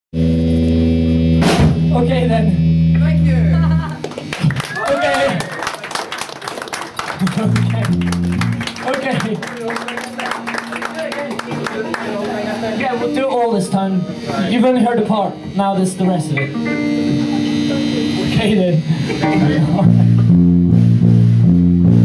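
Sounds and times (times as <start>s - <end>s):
electric guitar and bass chord: 0.1s - 4.4s, 7.2s - 22.0s
short bass note: 0.2s - 3.8s, 16.4s - 22.0s
amplifier hum: 0.2s - 5.1s, 7.2s - 22.0s
cymbal or drum hit: 1.2s - 2.1s.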